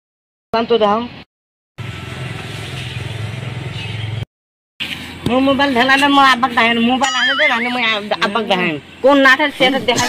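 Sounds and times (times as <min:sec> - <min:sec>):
motor running with low rumble: 0:01.8 - 0:04.2.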